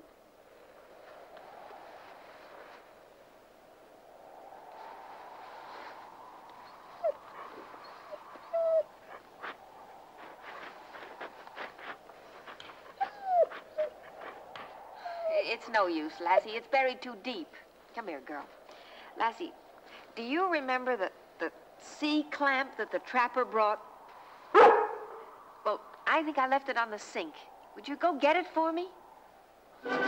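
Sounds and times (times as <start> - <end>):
dog whining: 6.7 - 9.2, 12.9 - 14.4.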